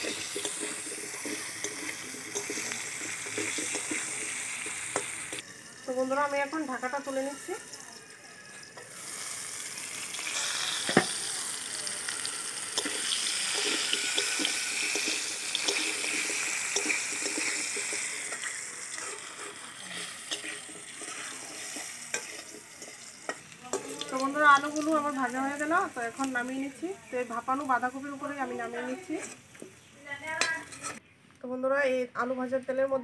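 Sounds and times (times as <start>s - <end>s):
metal spatula scraping pan: 0.0s - 5.4s, 12.7s - 24.8s, 28.4s - 29.6s, 30.4s - 31.0s
potatoes sizzling in oil: 0.0s - 31.0s.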